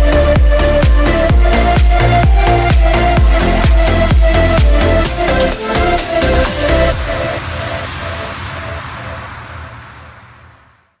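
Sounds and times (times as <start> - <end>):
dance remix with bass pulse: 0.0 - 10.6.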